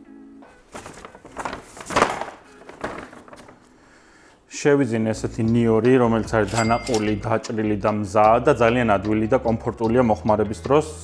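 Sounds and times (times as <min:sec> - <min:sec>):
paper bag rustling and crinkling: 0:00.6 - 0:03.8.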